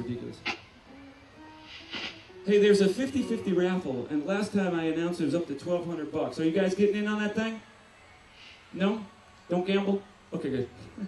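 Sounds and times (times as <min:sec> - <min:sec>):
faint hiss: 0:00.0 - 0:11.0
man's voice over loudspeakers: 0:02.5 - 0:07.6.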